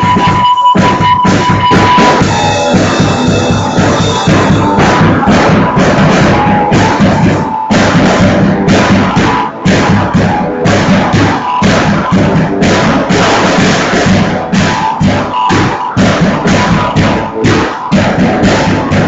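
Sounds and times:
cymbal crashes: 0.0 - 19.0
drum kit playing: 0.0 - 19.0.

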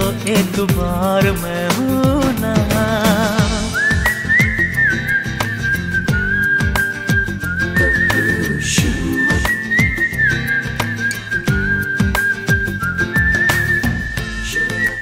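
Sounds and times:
steady drum beat: 0.0 - 14.8
whistled melody: 3.0 - 15.0.

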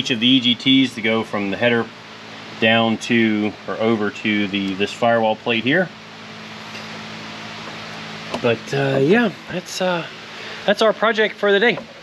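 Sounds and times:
faint low hum: 0.0 - 12.0
fan hissing: 0.0 - 12.0.

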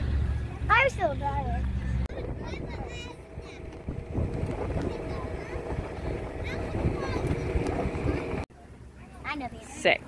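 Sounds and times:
engine droning: 0.0 - 9.8
wind on microphone: 2.0 - 8.5
wagon rumbling: 2.1 - 8.4.

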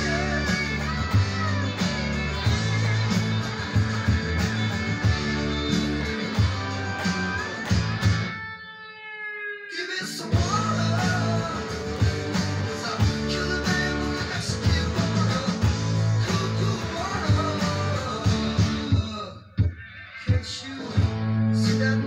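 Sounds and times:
band drums and bass: 0.0 - 8.4, 10.3 - 22.0
electric guitar rock song: 0.0 - 22.0.

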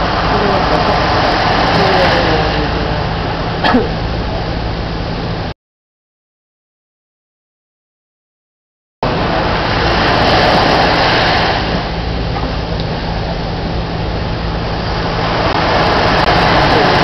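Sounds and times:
surf washing onto sand: 0.0 - 4.3, 9.0 - 17.0
steady low motor hum: 0.0 - 5.6, 9.0 - 17.0.

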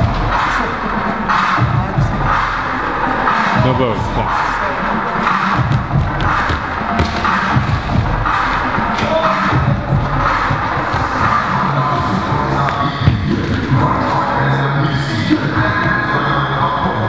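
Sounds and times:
loud music: 0.0 - 17.0.

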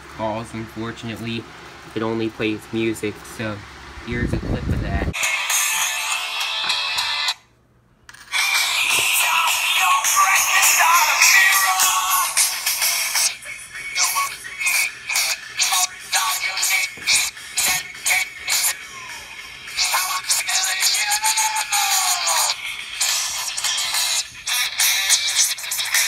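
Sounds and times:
song through small speaker: 5.2 - 7.5, 8.2 - 26.0.

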